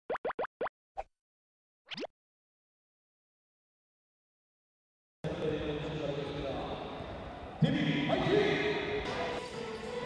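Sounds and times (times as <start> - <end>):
cartoon pops rising in pitch: 0.1 - 0.7.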